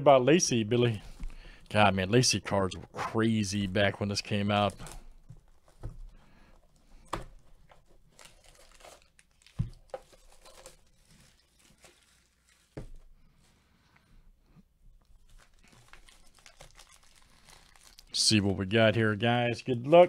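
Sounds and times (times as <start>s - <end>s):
plastic packaging crinkling and tearing: 3.4s - 13.1s, 15.0s - 18.5s.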